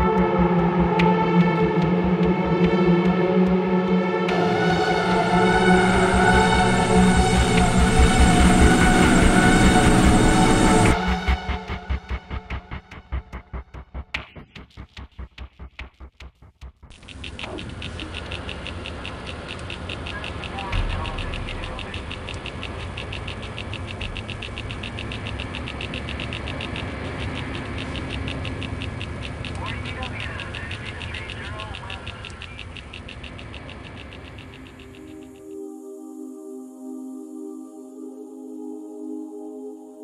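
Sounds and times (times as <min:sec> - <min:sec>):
fast even ticking: 0:00.0 - 0:35.5
low pulsing beat: 0:00.0 - 0:35.6
steady low hum: 0:00.0 - 0:39.2
intro music with held tones: 0:00.0 - 0:40.0.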